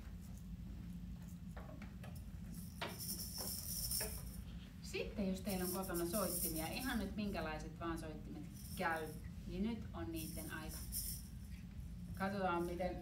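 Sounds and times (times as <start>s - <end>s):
hand percussion metal jingles: 2.0s - 4.5s, 5.5s - 7.1s, 8.4s - 9.2s, 10.2s - 13.0s.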